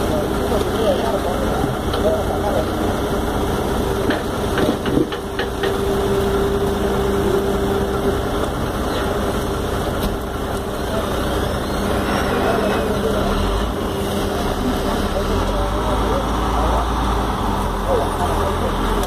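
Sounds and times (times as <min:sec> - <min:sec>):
diesel engine idling: 0:00.0 - 0:19.0.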